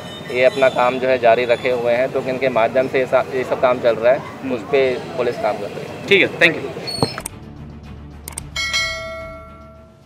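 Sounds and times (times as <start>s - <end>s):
bell chime: 8.6s - 10.0s.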